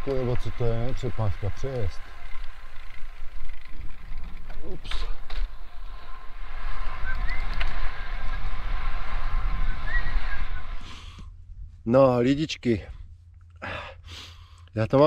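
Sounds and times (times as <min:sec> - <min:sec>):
steady low rumble: 0:00.0 - 0:14.6
wind buffeting microphone: 0:05.1 - 0:11.9.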